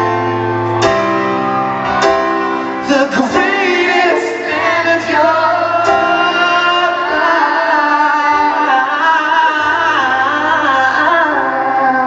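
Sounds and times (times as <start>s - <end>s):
grand piano: 0.0s - 12.0s.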